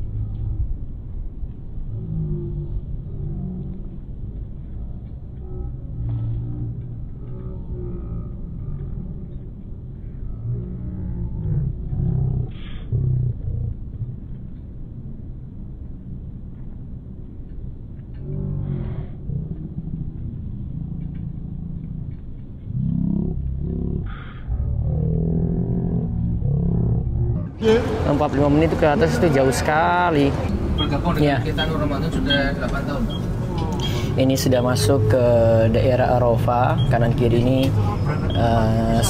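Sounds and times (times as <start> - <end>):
low outdoor rumble: 0.0 - 39.0
voices of crowd walking past: 27.3 - 39.0.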